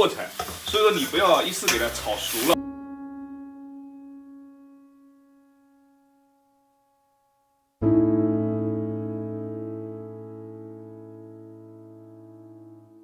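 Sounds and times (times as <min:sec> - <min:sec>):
piano music: 0:01.6 - 0:13.0.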